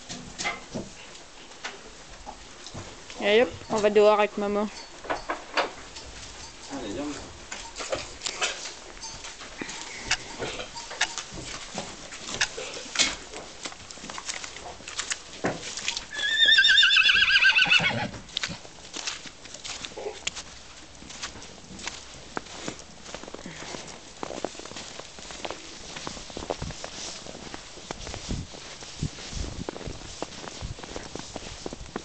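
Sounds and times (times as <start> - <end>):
horse hooves clicking: 0.0 - 32.0
horse whinnying: 16.1 - 18.2.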